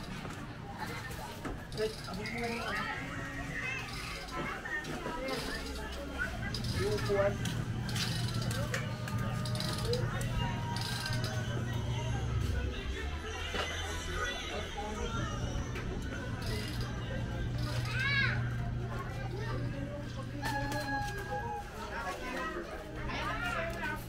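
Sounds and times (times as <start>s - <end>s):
voices in background: 0.0s - 24.0s
music playing nearby: 2.0s - 23.6s.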